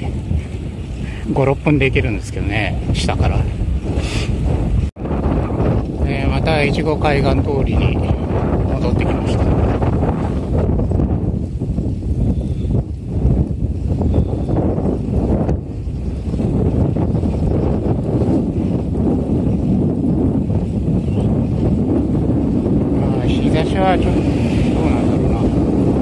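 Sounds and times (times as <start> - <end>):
wind buffeting microphone: 0.0 - 26.0.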